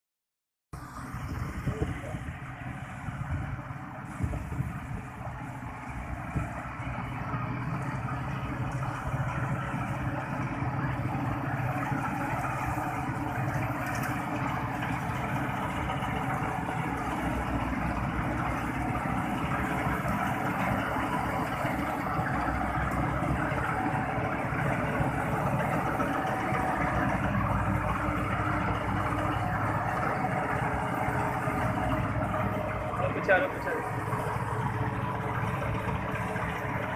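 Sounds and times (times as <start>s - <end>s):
tractor diesel engine under load: 0.7s - 36.9s.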